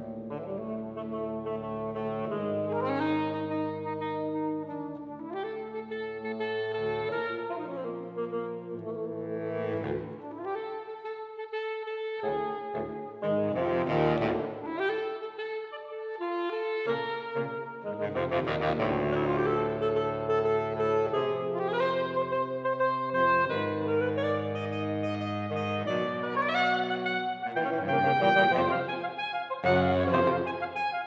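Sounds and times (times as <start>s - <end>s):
saxophone quartet playing chords: 0.0s - 31.0s.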